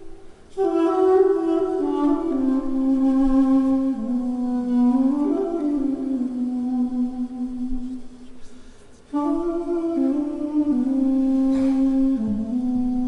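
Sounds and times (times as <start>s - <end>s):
duduk playing slow melody: 0.0s - 13.0s.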